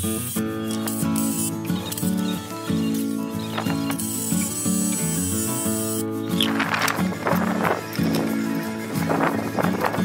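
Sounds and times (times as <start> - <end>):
power drill driving screws into wood: 0.0 - 7.0
background music: 0.2 - 10.0.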